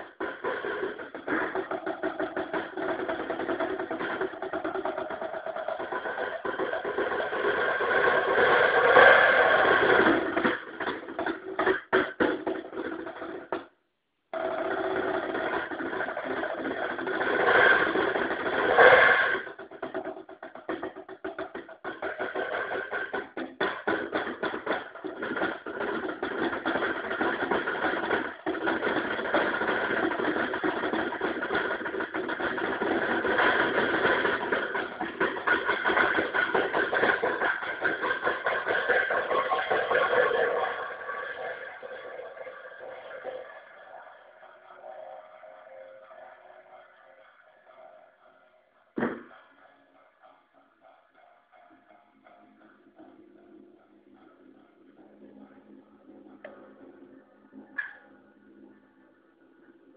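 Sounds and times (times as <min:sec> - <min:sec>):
drum kit with cymbals and gongs: 0:00.0 - 0:13.6, 0:14.4 - 0:41.8.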